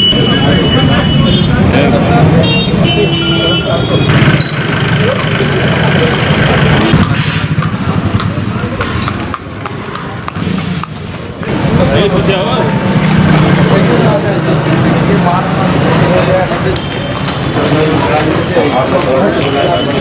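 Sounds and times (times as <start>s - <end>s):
vehicle horn toots: 0.0s - 1.6s, 2.4s - 4.6s
people talking: 0.0s - 10.6s, 11.2s - 20.0s
traffic running: 0.0s - 20.0s.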